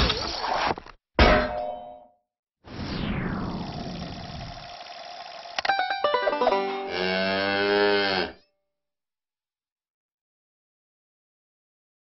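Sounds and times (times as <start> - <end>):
cow mooing: 6.7 - 8.5.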